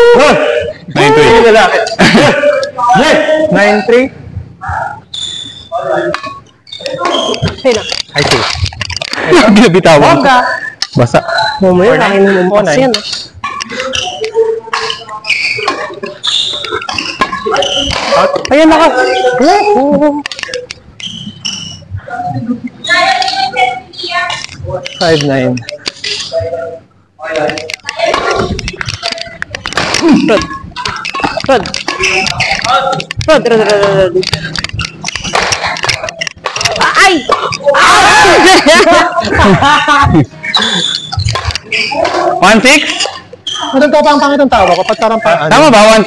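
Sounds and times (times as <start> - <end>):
players calling out: 4.5 - 46.0
shoes squeaking on court: 5.0 - 9.1, 13.0 - 21.9, 27.6 - 37.7, 40.2 - 45.2
racket striking shuttlecock: 12.9 - 18.5, 27.6 - 37.7.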